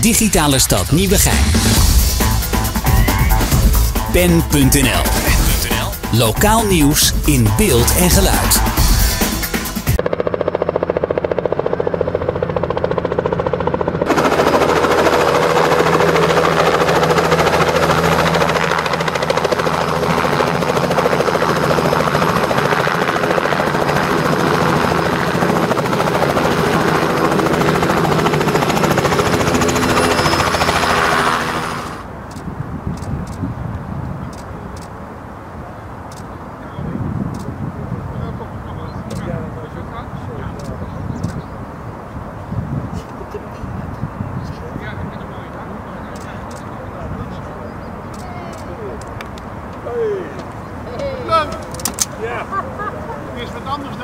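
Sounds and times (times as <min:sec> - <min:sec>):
helicopter hovering and landing: 0:00.0 - 0:32.4, 0:50.7 - 0:54.0.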